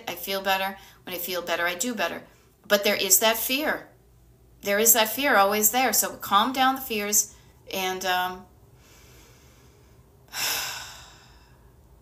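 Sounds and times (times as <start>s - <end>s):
woman sighing breath: 10.3s - 11.7s.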